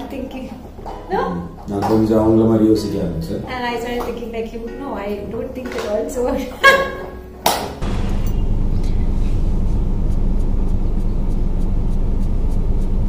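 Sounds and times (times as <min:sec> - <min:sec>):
car engine rumble: 0:07.8 - 0:13.0
road noise: 0:07.8 - 0:13.0.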